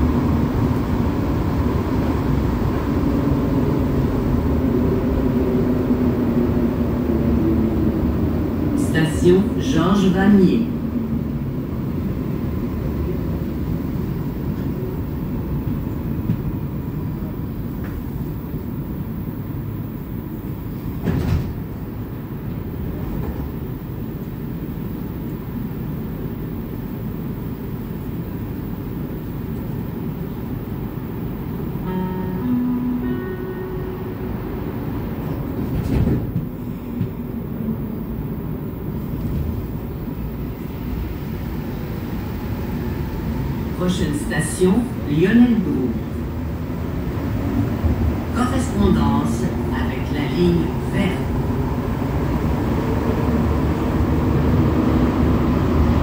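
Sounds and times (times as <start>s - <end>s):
train low rumble: 0.0s - 56.0s
brief tones: 31.9s - 34.4s.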